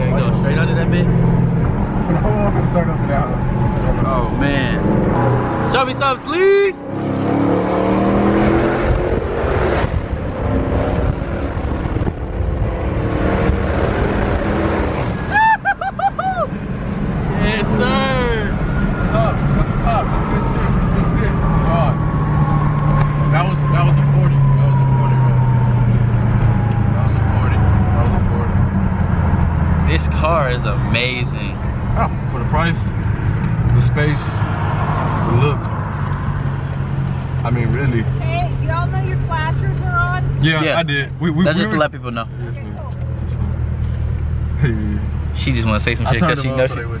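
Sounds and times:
car engine accelerating and slowing: 0.0 - 47.0.

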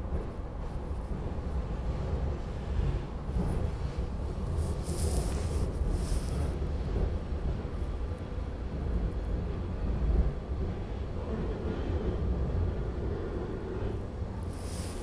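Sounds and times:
train car rumbling on track: 0.0 - 15.0.

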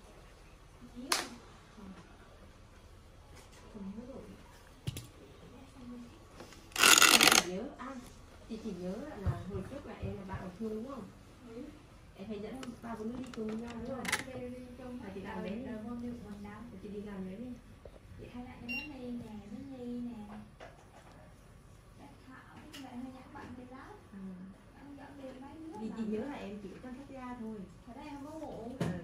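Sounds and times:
woman talking: 0.8 - 2.1, 3.6 - 4.7, 5.4 - 6.3, 7.1 - 20.6, 22.0 - 29.0.

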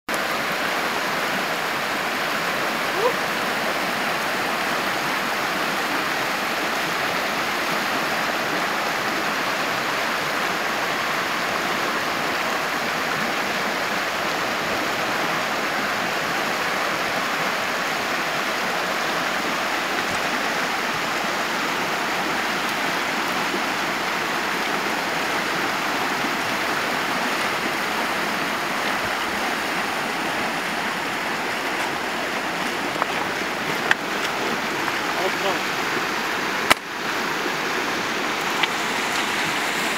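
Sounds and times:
river water rushing over riffle: 0.1 - 39.9.

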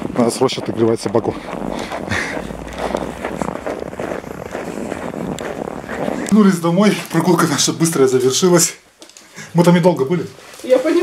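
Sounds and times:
clothing rustling against microphone: 0.0 - 11.0
footsteps: 0.0 - 11.0.

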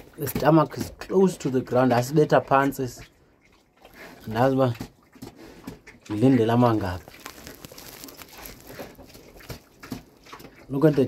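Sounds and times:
pig moving in pen: 0.0 - 11.0.

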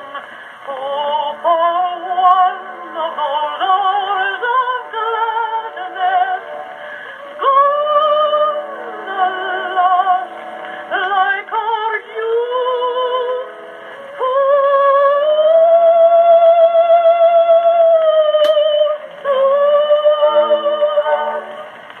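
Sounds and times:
soprano singing on old phonograph: 0.0 - 22.0.

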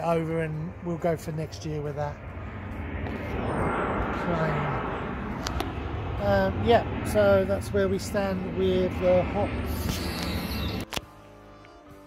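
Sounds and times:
aircraft passing overhead: 0.0 - 10.9
faint music with held chord: 10.9 - 12.0.

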